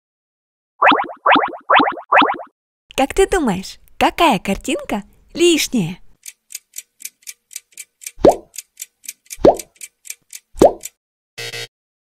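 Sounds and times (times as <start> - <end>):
cartoon plops dropping in pitch: 0.8 - 2.5, 8.2 - 8.5, 10.6 - 10.8
clock ticking fast: 6.2 - 11.0.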